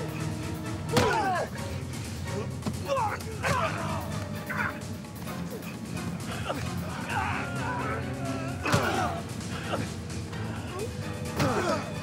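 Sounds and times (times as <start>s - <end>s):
film score: 0.0s - 12.0s
men grunting and crying out: 0.0s - 12.0s.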